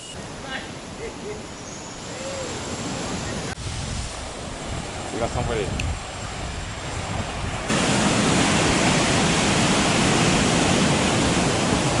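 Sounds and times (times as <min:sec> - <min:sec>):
outdoor background hiss: 0:00.0 - 0:12.0
loud steady rushing noise: 0:02.2 - 0:12.0.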